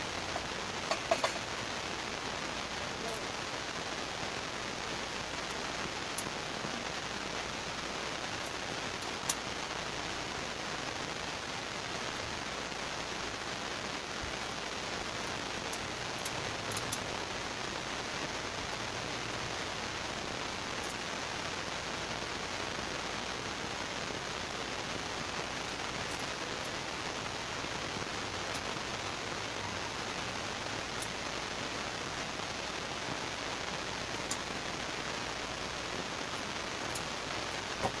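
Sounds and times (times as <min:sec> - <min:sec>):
steady hiss: 0:00.0 - 0:38.0.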